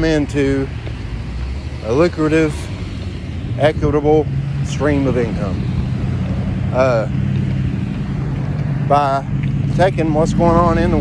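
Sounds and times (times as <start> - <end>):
traffic engine rumble: 0.0 - 11.0.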